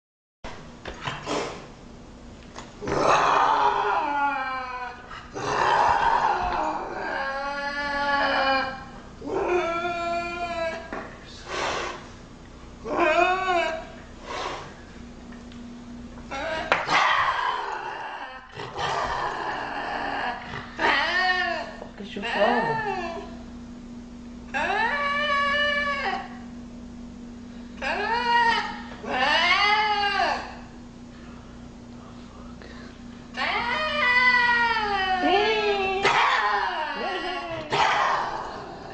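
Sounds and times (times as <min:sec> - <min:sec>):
lynx growling: 0:02.8 - 0:09.7
lynx yowling: 0:02.8 - 0:10.9, 0:16.3 - 0:23.4, 0:24.5 - 0:26.4, 0:27.8 - 0:30.7, 0:33.4 - 0:38.9.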